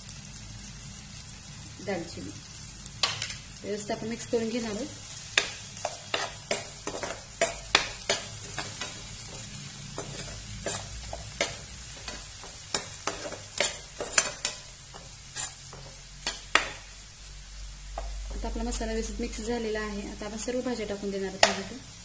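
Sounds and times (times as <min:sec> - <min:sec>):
food sizzling in pan: 0:00.0 - 0:22.0
metal spatula scraping frying pan: 0:05.0 - 0:16.9.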